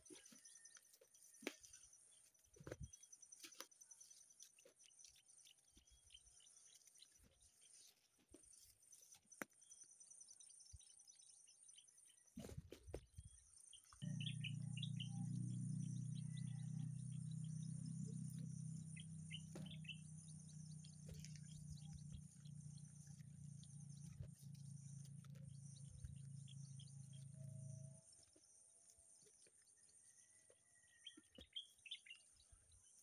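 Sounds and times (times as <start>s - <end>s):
bird chirps: 8.6s - 33.0s
steady low hum: 14.0s - 28.6s.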